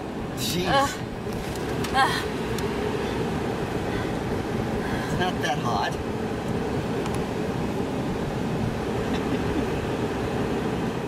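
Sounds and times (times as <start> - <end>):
air-conditioning fan: 0.0 - 11.0
vehicle engine running: 0.0 - 11.0.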